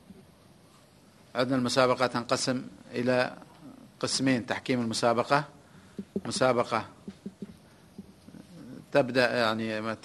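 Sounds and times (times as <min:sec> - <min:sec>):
man speaking: 0:01.4 - 0:07.5.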